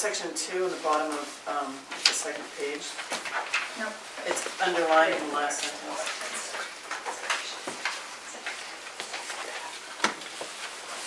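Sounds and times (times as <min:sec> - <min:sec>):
paper rustling: 0:00.5 - 0:11.0.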